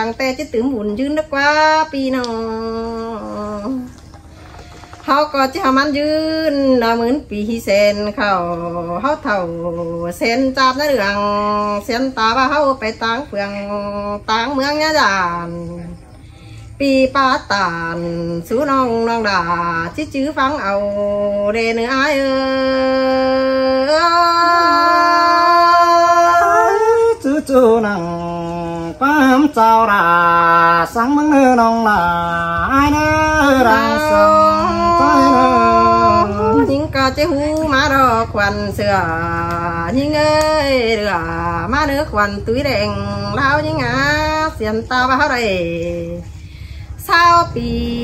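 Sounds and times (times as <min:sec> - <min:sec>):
woman singing long note: 0:16.7 - 0:46.3.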